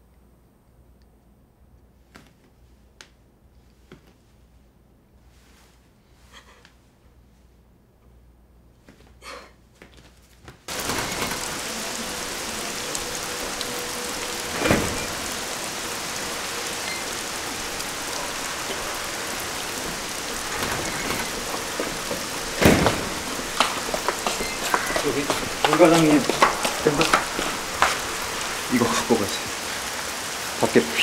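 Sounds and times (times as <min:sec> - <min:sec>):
loud sudden sounds: 0:10.7 - 0:30.4
steady rain pouring: 0:10.7 - 0:31.0.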